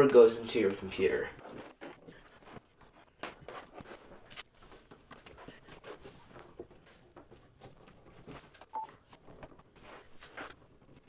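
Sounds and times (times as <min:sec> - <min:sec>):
cables rustling and clicking: 0:00.5 - 0:11.0.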